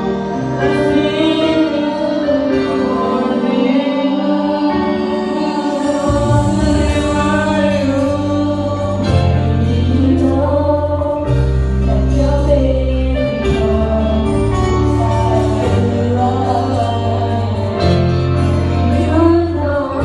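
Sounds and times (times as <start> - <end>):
young voices singing in chorus: 1.0 - 11.3
low bass notes: 5.9 - 20.0.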